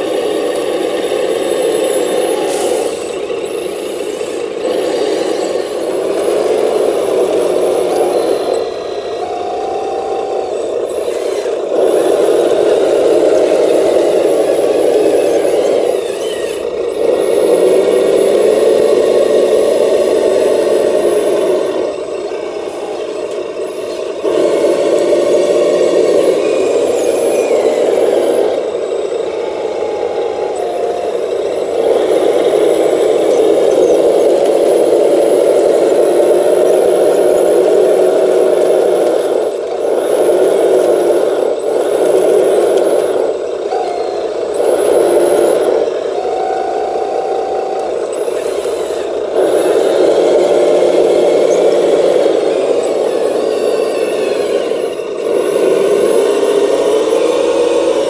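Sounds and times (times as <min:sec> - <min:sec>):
model loader motors running: 0:00.0 - 0:58.0
short whines: 0:00.0 - 0:58.0.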